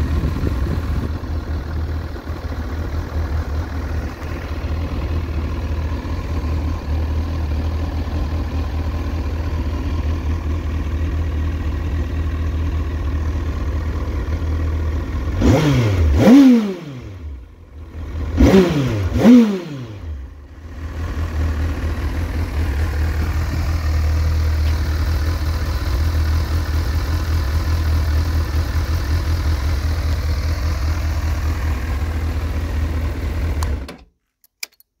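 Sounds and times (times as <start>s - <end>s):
motorcycle engine idling: 0.0s - 33.9s
motorcycle engine revving: 0.0s - 33.9s.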